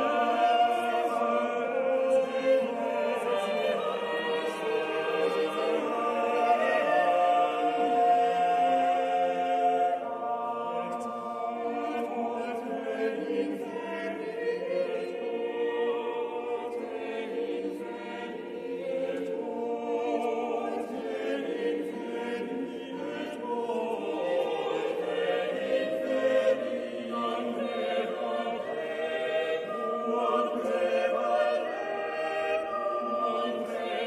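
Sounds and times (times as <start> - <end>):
choir singing a hymn: 0.0 - 34.0.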